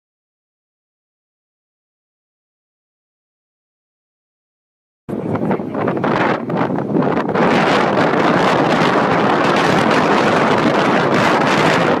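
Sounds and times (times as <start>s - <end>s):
wind rushing on microphone: 5.1s - 12.0s.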